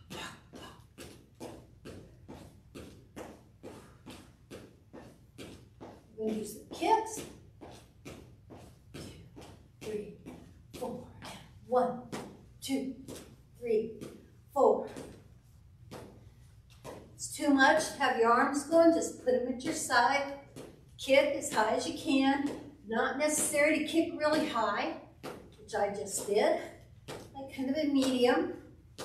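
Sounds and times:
footsteps on wooden floor: 0.1 - 11.4.

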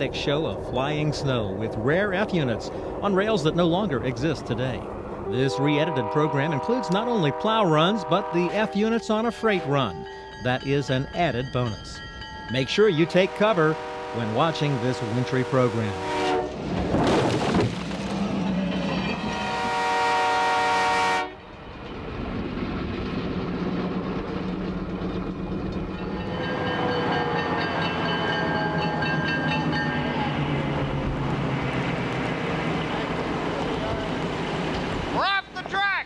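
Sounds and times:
diesel engines droning: 0.0 - 17.0, 21.4 - 35.6
locomotive air horn: 5.2 - 10.3, 13.1 - 16.6, 19.2 - 21.4.

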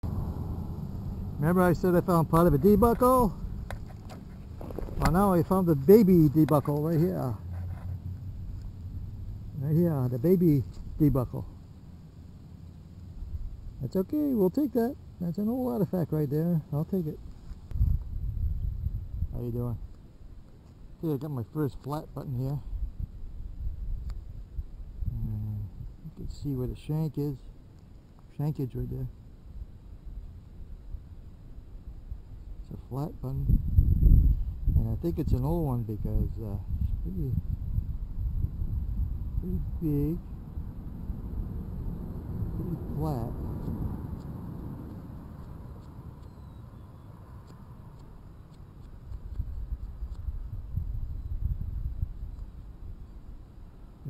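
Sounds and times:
wind rumbling on microphone: 0.0 - 14.3, 16.9 - 54.0.

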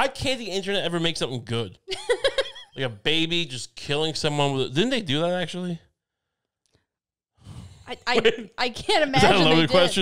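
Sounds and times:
person drawing a breath: 7.4 - 7.9
person speaking: 7.7 - 10.0.

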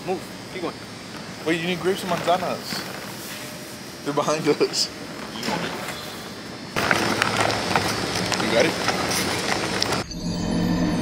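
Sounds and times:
background hum: 0.0 - 11.0
rumbling and rattling noise: 0.0 - 11.0.

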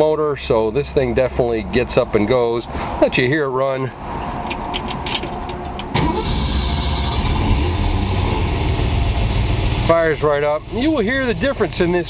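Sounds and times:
engine running steadily: 3.9 - 12.0
starter cranking engine: 5.9 - 9.2.

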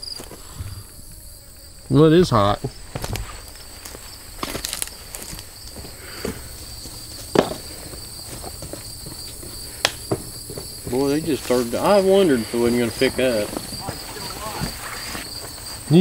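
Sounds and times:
crickets buzzing: 0.0 - 16.0.

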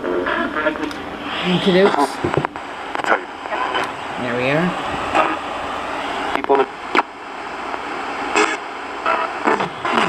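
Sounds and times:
snatch of radio broadcast: 0.0 - 4.0, 4.8 - 7.1, 7.7 - 10.0
radio static hiss: 0.0 - 10.0.

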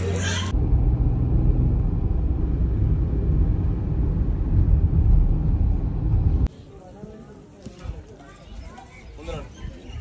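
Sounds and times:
car road and engine noise: 0.0 - 6.5.

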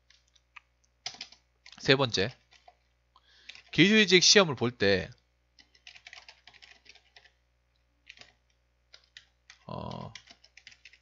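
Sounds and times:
faint keyboard typing: 0.0 - 3.9, 5.1 - 11.0.

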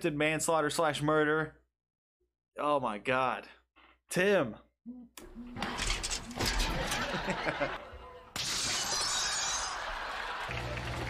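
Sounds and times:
glass shattering: 5.8 - 7.4, 8.4 - 9.9.

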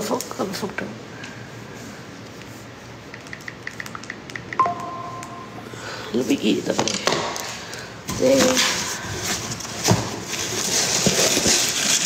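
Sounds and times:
phone tap blips: 3.4 - 5.4
two-note electronic tone: 4.6 - 5.9.

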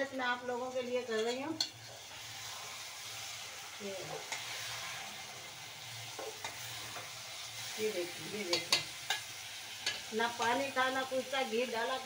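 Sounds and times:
vegetables sizzling in a pot: 0.0 - 12.0.

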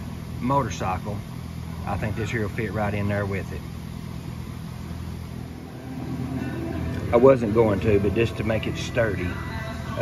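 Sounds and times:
motor humming: 4.0 - 9.4.

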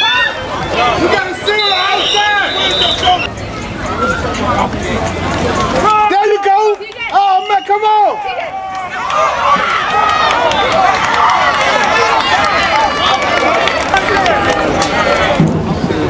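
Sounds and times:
crowd yelling and cheering: 0.0 - 16.0.

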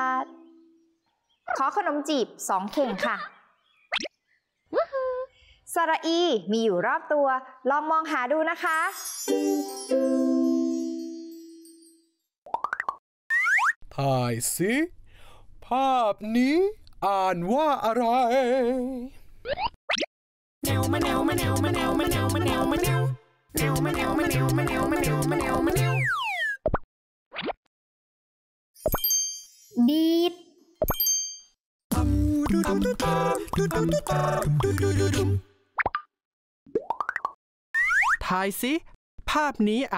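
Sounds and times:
music: 9.0 - 12.0, 20.6 - 26.0, 31.9 - 35.4
cartoon pop and chime ding: 28.8 - 29.5.

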